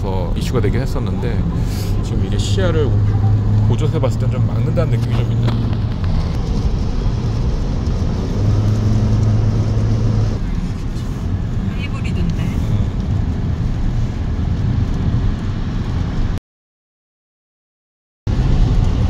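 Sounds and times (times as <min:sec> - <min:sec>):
car engine drone: 0:00.0 - 0:16.4, 0:18.3 - 0:19.0
road and tyre noise: 0:00.0 - 0:16.4, 0:18.3 - 0:19.0.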